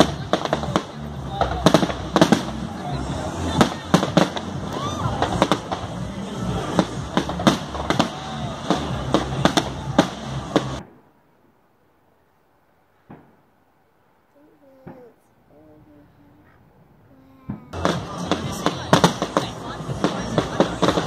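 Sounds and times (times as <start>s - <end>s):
fireworks bangs and crackles: 0.0s - 11.1s, 13.0s - 13.4s, 17.5s - 21.0s.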